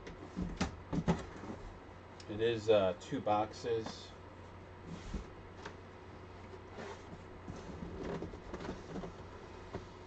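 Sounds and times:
steady low hum: 0.0 - 10.0
cardboard boxes knocking and scraping: 0.3 - 1.7.

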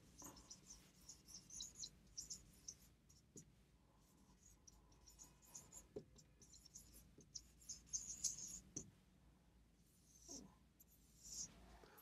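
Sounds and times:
marker squeaking on whiteboard: 0.1 - 3.4, 4.2 - 8.8, 10.0 - 12.0.

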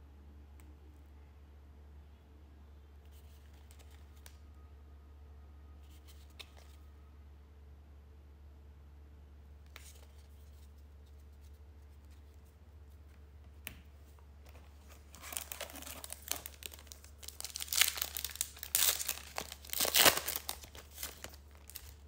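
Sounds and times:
wrapper tearing and crinkling: 14.8 - 22.0.

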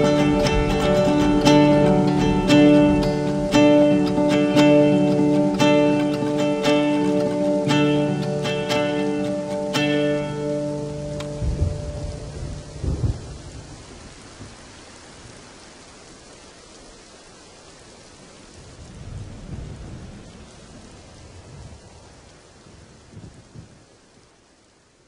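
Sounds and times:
guitar notes: 0.0 - 13.4
steady rain: 0.0 - 25.0
low rolls of thunder: 11.3 - 15.6, 18.5 - 23.9.

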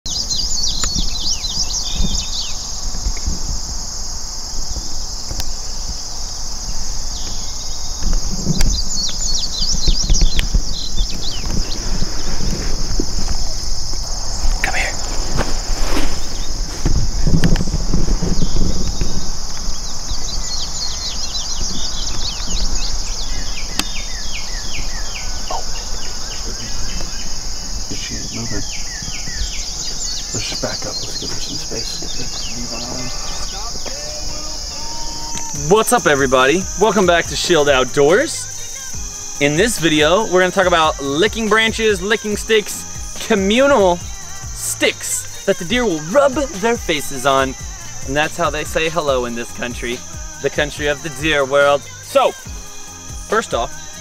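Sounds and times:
chirping bird calls: 0.0 - 54.0
insect chorus: 0.0 - 54.0
wind rumble on microphone: 0.1 - 37.9.

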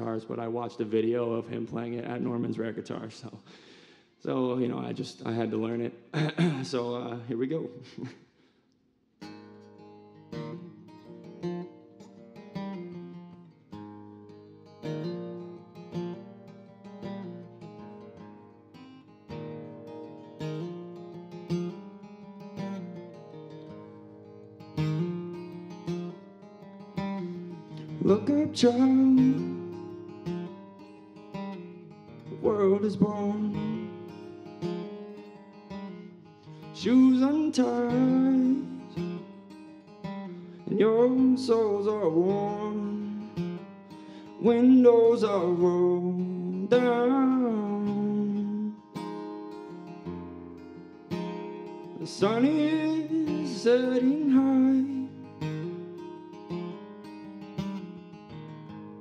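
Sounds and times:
acoustic guitar picking: 0.0 - 7.3, 9.2 - 59.0
wordless singing: 28.0 - 29.6, 36.8 - 39.0, 52.0 - 55.2.

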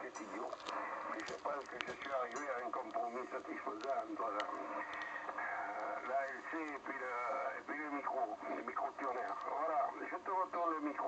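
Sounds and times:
voice over radio loudspeaker: 0.0 - 11.0.

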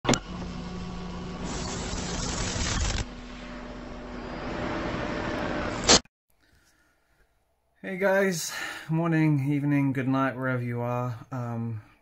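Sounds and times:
steady low hum: 0.1 - 6.0
loud burst of noise: 0.3 - 6.0
static hiss: 1.0 - 3.8.

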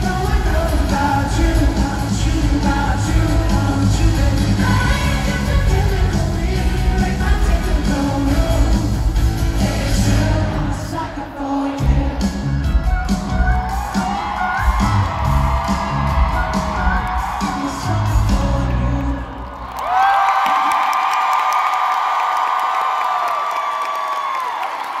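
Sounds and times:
pop rock band playing: 0.0 - 19.3
crowd cheering and screaming: 11.8 - 25.0.

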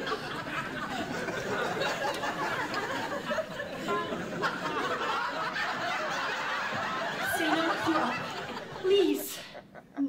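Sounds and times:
people snickering and chuckling: 0.0 - 10.0.

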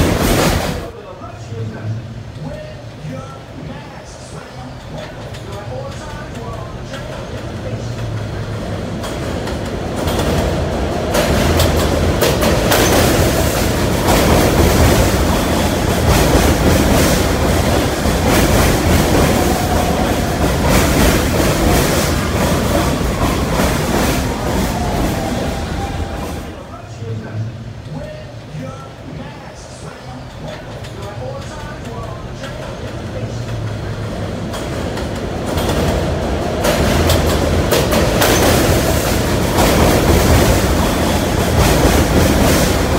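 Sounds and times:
subway train arriving: 0.0 - 42.9
wheels clattering over rail joints: 4.9 - 26.6, 30.4 - 42.9.

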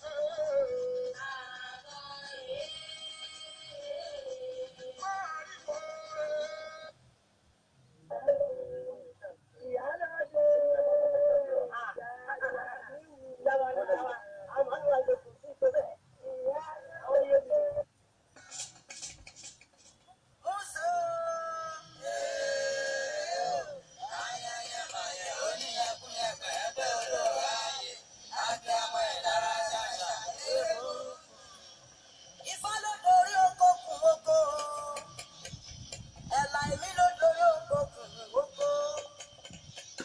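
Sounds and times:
music with singing voice: 0.0 - 7.0, 36.3 - 40.0.

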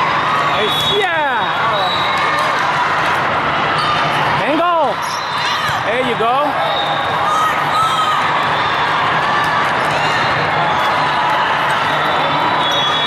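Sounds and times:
volleyball being played: 0.0 - 13.0.

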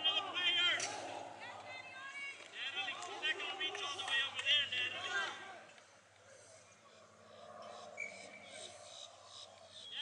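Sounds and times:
distant players shouting: 0.0 - 5.8.

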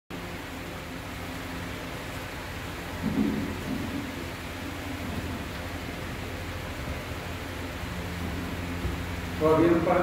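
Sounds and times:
low constant hum: 0.1 - 10.0.

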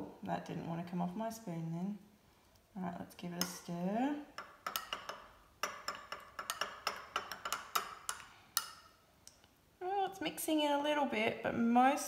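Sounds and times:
teaspoon clinking against glass: 4.4 - 8.9.

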